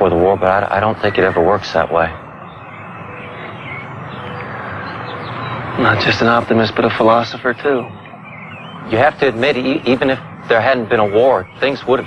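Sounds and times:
faint high chirp: 0.0s - 12.0s
rushing outdoor background noise: 0.0s - 12.0s.

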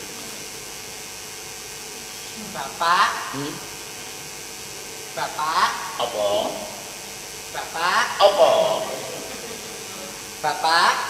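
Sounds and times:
background hiss: 0.0s - 11.0s
faint electrical hum: 0.0s - 11.0s.

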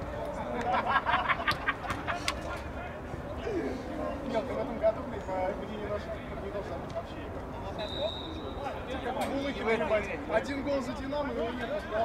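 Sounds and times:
men calling and chatting: 0.0s - 12.0s.

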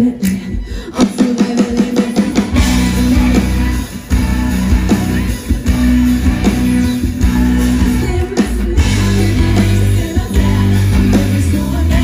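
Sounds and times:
pop-rock band playing: 0.0s - 12.0s.

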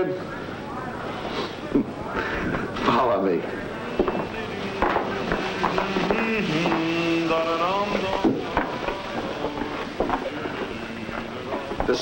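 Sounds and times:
background hubbub: 0.0s - 12.0s
men chattering: 0.3s - 12.0s.

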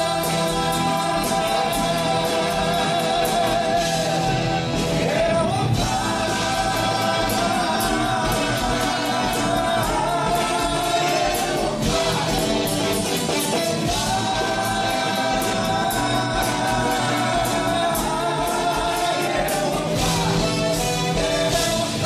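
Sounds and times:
live rock band playing: 0.0s - 22.0s
sung vocals: 0.0s - 22.0s.

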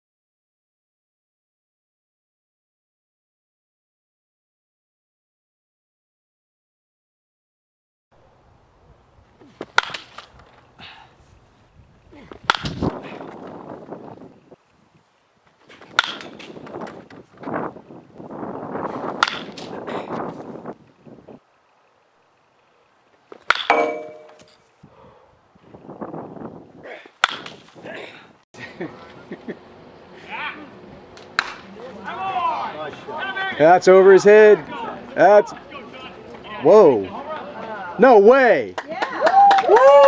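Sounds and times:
bat cracking a baseball: 9.4s - 10.4s, 12.3s - 13.5s, 15.7s - 17.2s, 19.1s - 19.8s, 23.3s - 24.5s, 27.2s - 27.8s, 31.2s - 31.7s.

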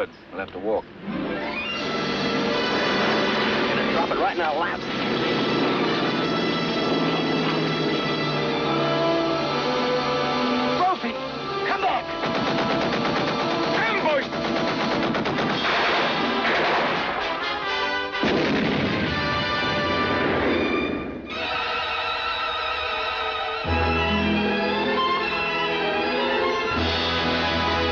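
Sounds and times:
orchestral trailer music: 1.0s - 27.9s
rapid gunfire: 12.1s - 17.5s, 18.1s - 20.3s
explosions: 14.8s - 17.4s, 18.2s - 21.1s.

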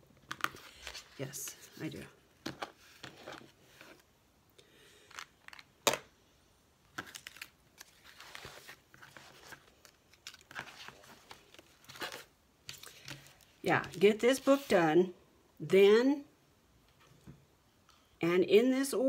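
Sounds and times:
paper pages rustling: 0.2s - 4.1s, 6.9s - 14.8s.

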